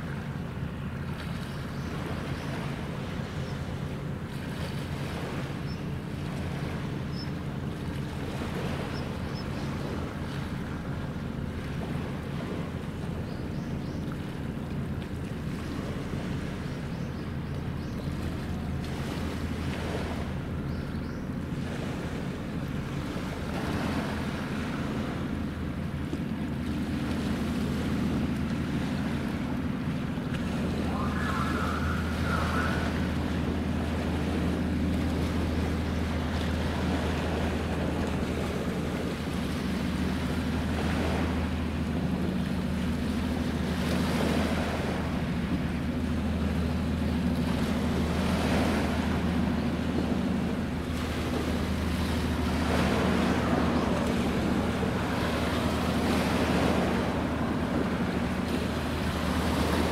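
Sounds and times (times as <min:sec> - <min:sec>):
ship diesel engine drone: 0:00.0 - 0:59.9
water lapping: 0:00.0 - 0:59.9
wind: 0:00.0 - 0:59.9
high warble: 0:30.6 - 0:34.8.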